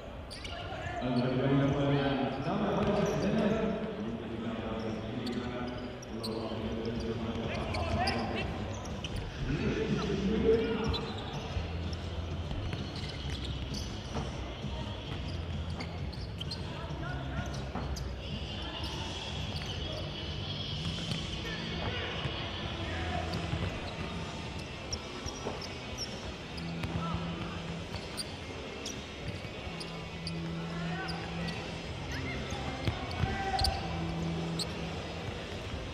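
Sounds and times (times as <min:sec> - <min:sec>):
players calling out: 0:14.9 - 0:35.9.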